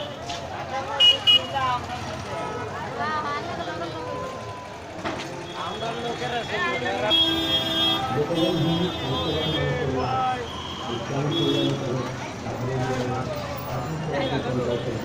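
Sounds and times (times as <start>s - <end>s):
crowd voices: 0.0s - 15.0s
vehicle horns: 0.9s - 1.7s, 5.4s - 12.0s, 13.9s - 15.0s.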